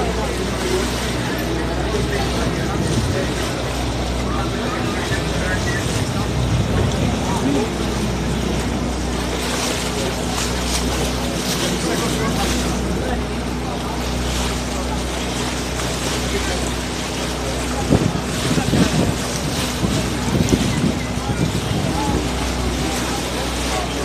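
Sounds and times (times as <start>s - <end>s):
boat engine humming: 0.0s - 24.0s
indistinct voices: 0.0s - 24.0s
water wash rushing: 0.0s - 24.0s
wind: 0.0s - 24.0s.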